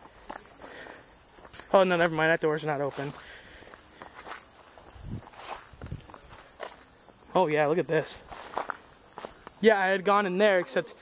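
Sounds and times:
footsteps through grass: 0.0 - 9.9
high insect chorus: 0.0 - 11.0.

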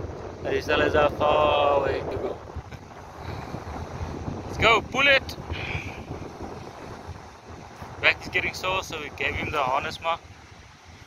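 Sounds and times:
surf on rocky shore: 0.0 - 11.0
wind buffeting microphone: 0.0 - 11.0.

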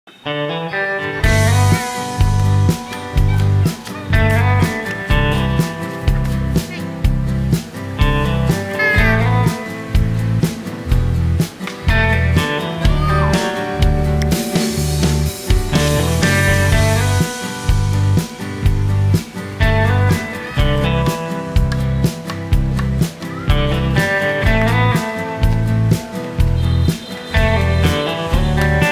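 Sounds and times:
upbeat background music: 0.3 - 28.9.

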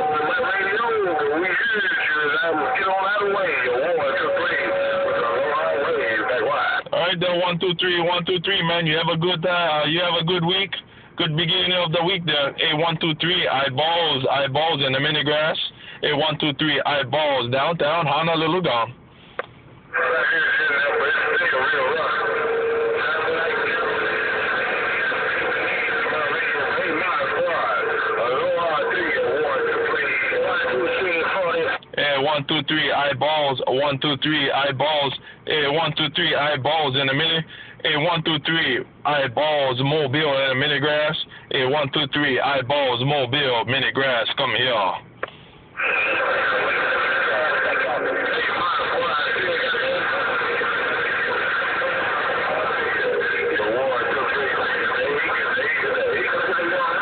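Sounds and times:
radio static hiss: 0.0 - 57.0
faint garbled voices: 19.9 - 32.0, 45.8 - 57.0.

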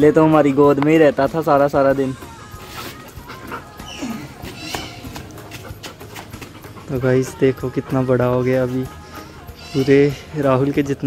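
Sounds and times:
faint background music: 0.0 - 11.0
dog sounds: 2.7 - 8.0.

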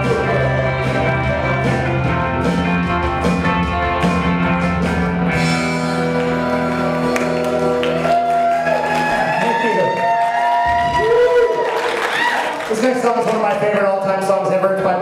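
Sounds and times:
rock band with electric guitars: 0.0 - 12.7.

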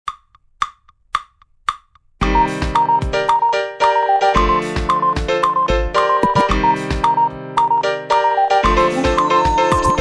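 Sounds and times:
woodblock strikes: 0.1 - 3.6, 6.2 - 7.7.

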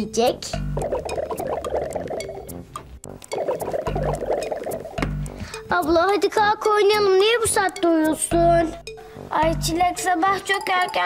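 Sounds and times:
light music: 0.0 - 11.0
chattering twinkling comic effect: 0.8 - 2.6, 3.3 - 5.0.

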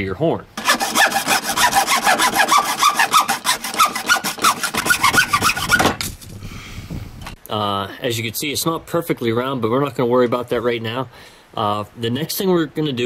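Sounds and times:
hacksaw cutting through horn: 0.6 - 6.0.

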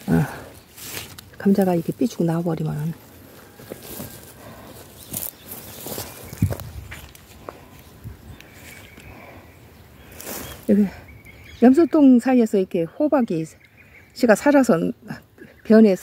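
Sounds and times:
rustling: 0.0 - 8.9
footsteps on dry soil: 0.0 - 9.1.

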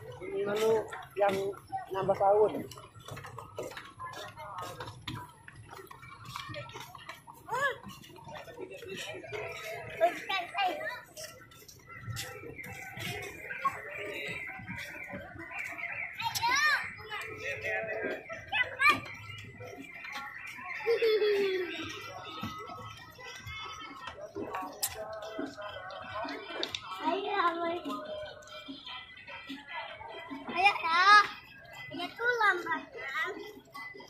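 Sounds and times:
adults and children chattering: 0.0 - 34.0
footsteps on wooden boards: 0.8 - 9.2.

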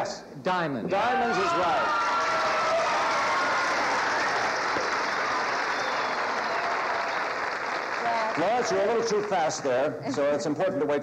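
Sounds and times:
audience applauding: 1.8 - 9.7.

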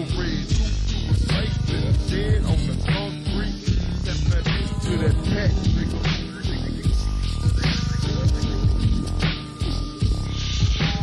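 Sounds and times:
slowed hip-hop beat: 0.0 - 11.0.

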